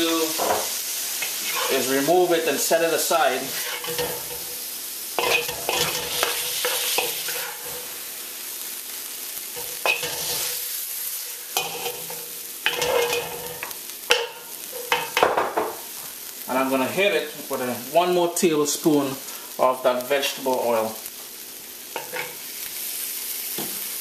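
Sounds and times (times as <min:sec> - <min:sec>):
meat sizzling in a wok: 0:00.0 - 0:24.0
wooden spatula scraping a pan: 0:00.5 - 0:02.1, 0:03.4 - 0:04.6, 0:05.2 - 0:07.9, 0:09.6 - 0:10.6, 0:11.5 - 0:15.2.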